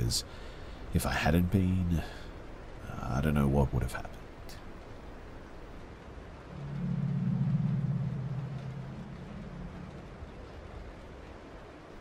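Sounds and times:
faint steady hiss: 0:00.0 - 0:12.0
low humming drone: 0:05.7 - 0:12.0.

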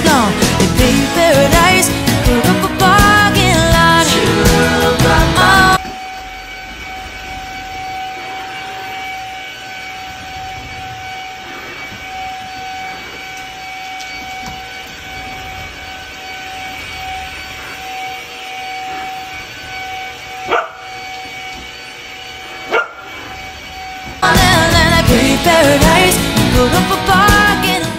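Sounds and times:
vacuum cleaner motor whine: 0:00.0 - 0:27.9
puppy barking: 0:20.5 - 0:20.8, 0:22.7 - 0:23.0.

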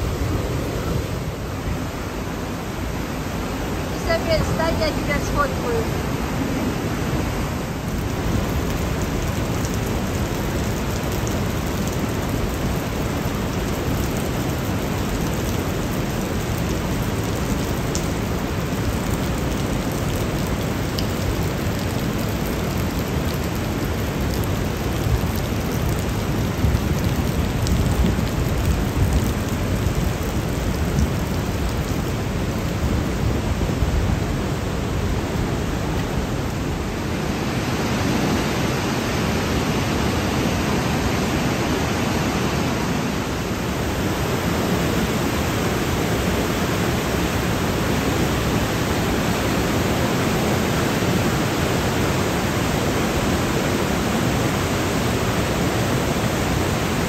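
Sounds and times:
mountain torrent roaring: 0:00.0 - 0:57.0.

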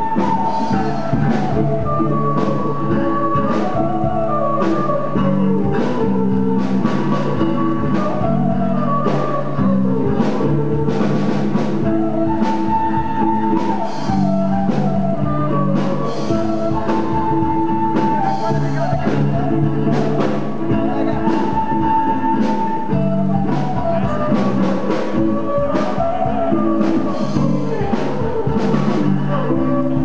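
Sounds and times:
bass guitar: 0:00.0 - 0:30.0
drum kit beat: 0:00.0 - 0:30.0
electric guitar: 0:00.0 - 0:30.0
flute melody: 0:00.0 - 0:30.0.

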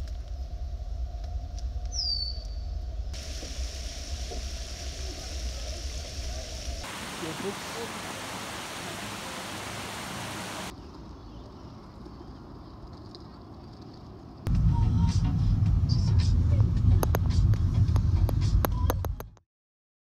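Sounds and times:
creek running over rocks: 0:03.2 - 0:10.7
road and engine noise in car: 0:14.2 - 0:19.0.

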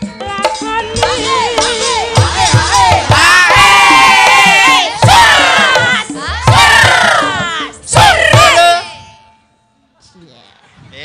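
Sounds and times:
women singing through microphones: 0:00.0 - 0:08.8.

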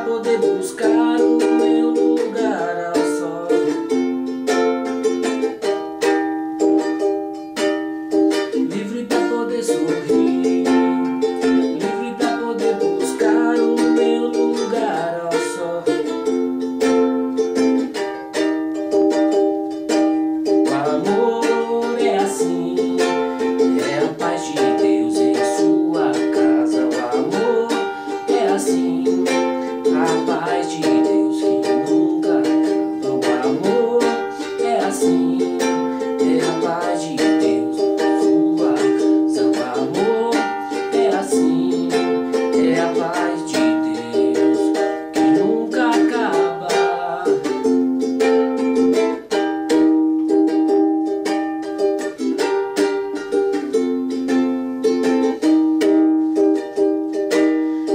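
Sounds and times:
man singing: 0:00.0 - 0:04.2, 0:08.3 - 0:17.0, 0:20.5 - 0:49.4
ukulele strumming: 0:00.0 - 0:57.9.

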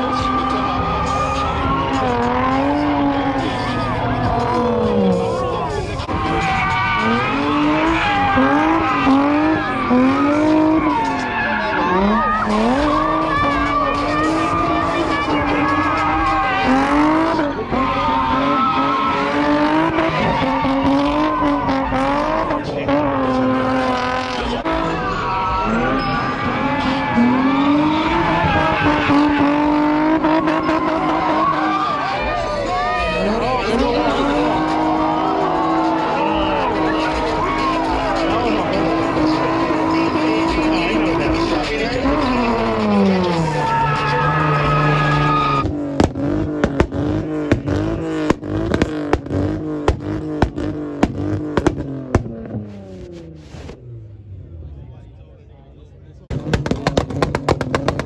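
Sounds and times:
tyres spinning and squealing: 0:00.0 - 0:54.6
car engine revving: 0:00.0 - 0:58.0.

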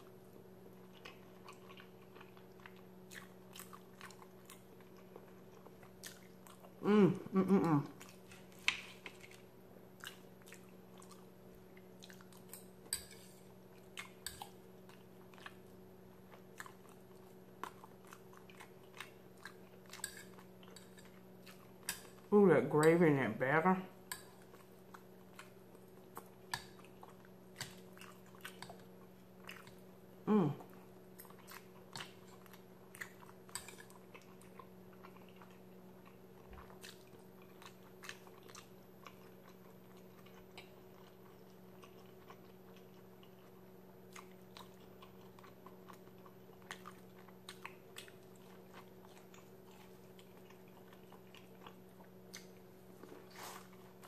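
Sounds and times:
chewing and biting: 0:00.8 - 0:06.8, 0:08.0 - 0:22.3, 0:24.4 - 0:29.9, 0:31.1 - 0:54.0
falling vocal hum: 0:06.8 - 0:08.0.

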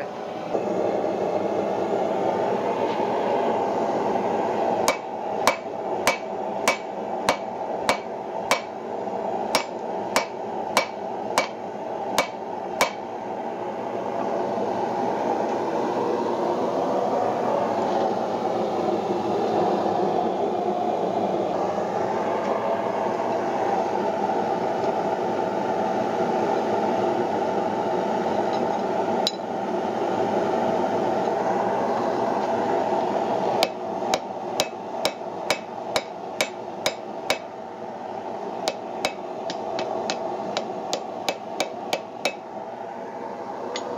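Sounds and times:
hammer striking iron on anvil: 0:04.9 - 0:08.7, 0:09.6 - 0:11.6, 0:12.2 - 0:13.0, 0:33.6 - 0:37.5, 0:38.7 - 0:42.4.

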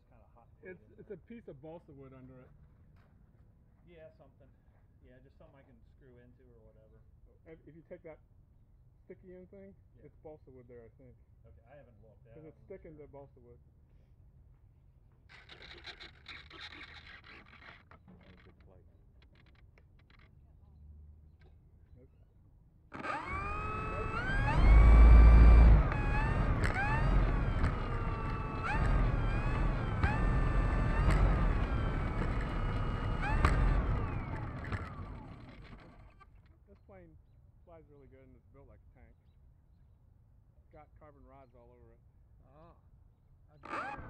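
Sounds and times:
electric motor and propeller whine: 0:22.9 - 0:36.5, 0:43.6 - 0:44.0
low rumble: 0:23.2 - 0:36.1.

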